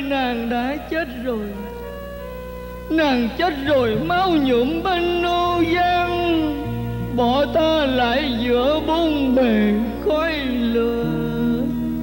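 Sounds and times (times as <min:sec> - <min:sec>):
sparse instrumental accompaniment: 0:01.6 - 0:12.0
person singing opera: 0:03.0 - 0:12.0.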